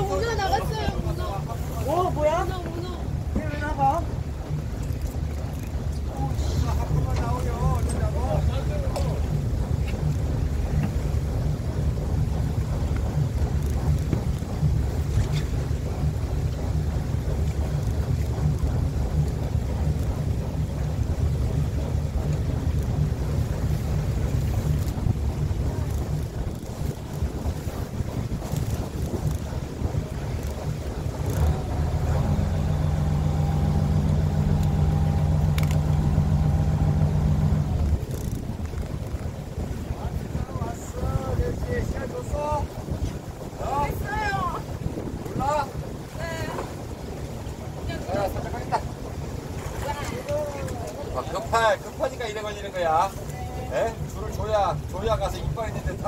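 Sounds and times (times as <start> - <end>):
boat engine running: 0.0 - 56.0
wind buffeting microphone: 0.0 - 56.0.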